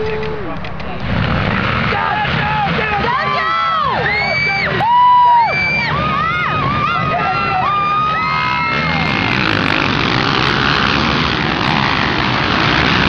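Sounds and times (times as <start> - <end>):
quad bike engines revving: 0.0 - 13.0.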